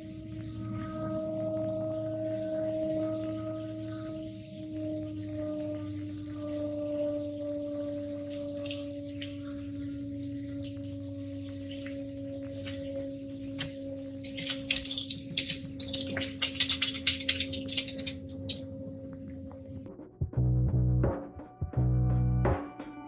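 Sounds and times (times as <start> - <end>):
low droning hum: 0.0 - 21.1
sharp crackling clicks: 13.6 - 19.9.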